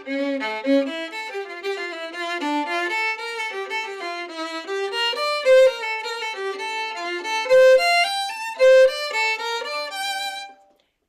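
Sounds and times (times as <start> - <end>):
solo violin melody: 0.0 - 10.7.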